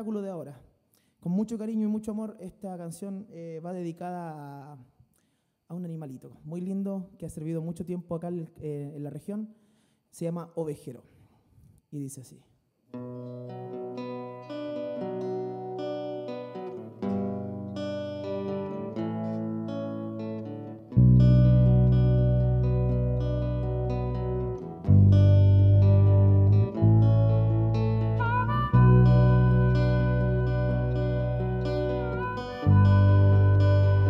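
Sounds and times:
acoustic guitar picked: 12.9s - 34.0s
deep sustained struck tone: 24.9s - 34.0s.

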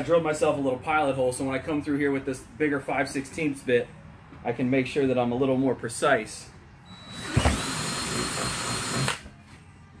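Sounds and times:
cordless drill whining: 6.9s - 9.3s.

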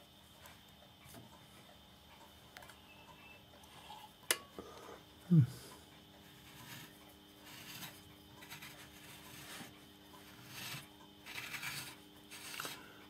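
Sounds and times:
light bulb base scraping lamp holder: 6.3s - 12.8s.

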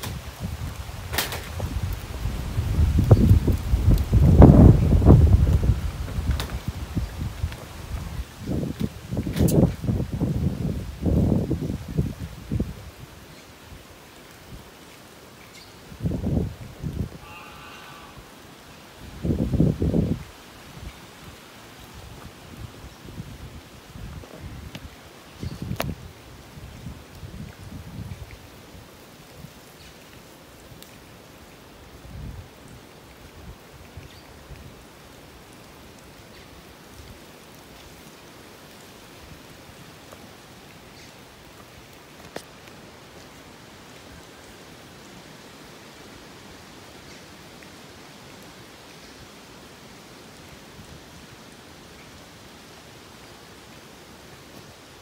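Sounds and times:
hiss of boiling pools and steam: 0.0s - 55.0s.

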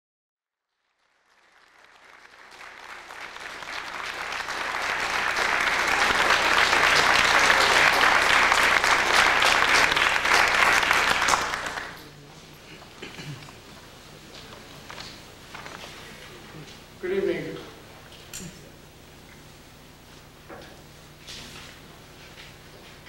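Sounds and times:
audience applauding: 0.8s - 12.1s.

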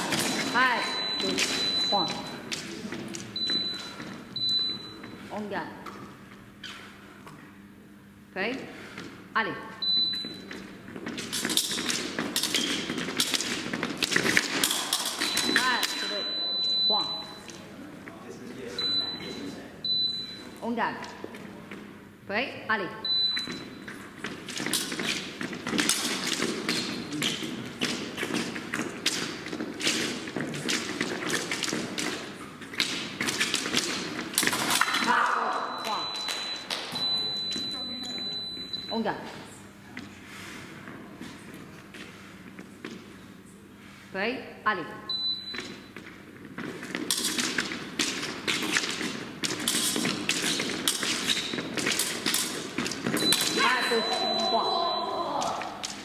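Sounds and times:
fencing footsteps tapping: 10.0s - 16.1s, 23.2s - 35.2s, 45.4s - 54.0s
long high electronic beep: 53.2s - 55.2s.

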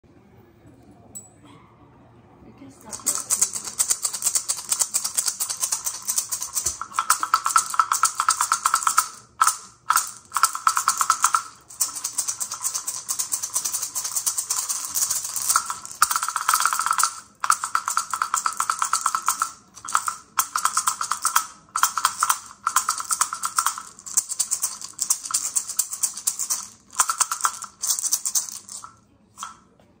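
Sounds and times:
maracas rattling: 2.8s - 29.6s.

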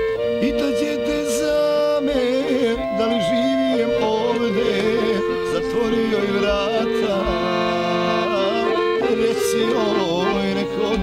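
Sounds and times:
accordion playing folk tune: 0.0s - 11.0s.

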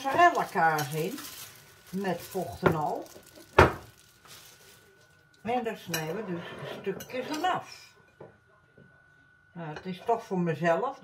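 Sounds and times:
plastic tub set down on counter: 2.5s - 3.9s.

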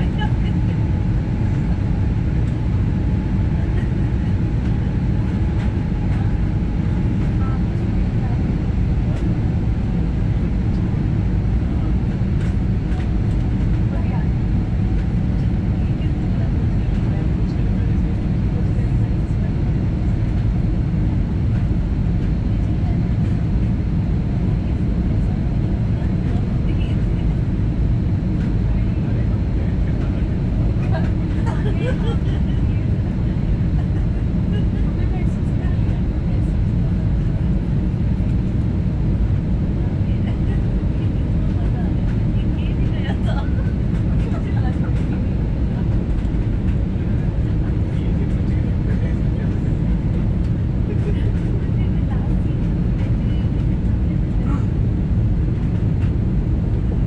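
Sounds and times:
faint passenger voices: 0.0s - 57.0s
jet engines and airflow roar: 0.0s - 57.0s.

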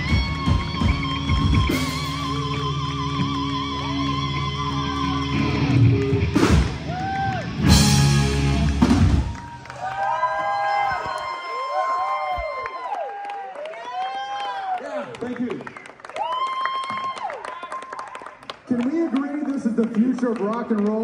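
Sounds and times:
live rock band playing: 0.0s - 9.7s
crowd cheering and whooping: 0.0s - 15.2s, 15.8s - 18.4s.

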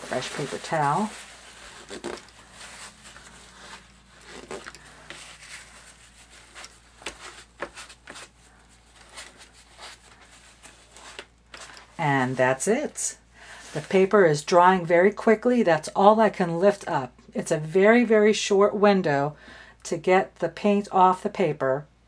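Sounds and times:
paper towel rustling on paper: 0.0s - 14.2s.

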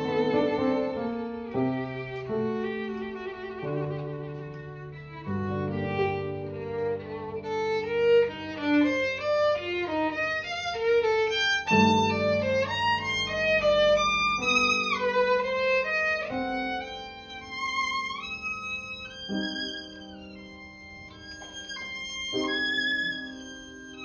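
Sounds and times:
piano accompaniment: 0.0s - 24.0s
violin melody with vibrato: 0.0s - 24.0s.

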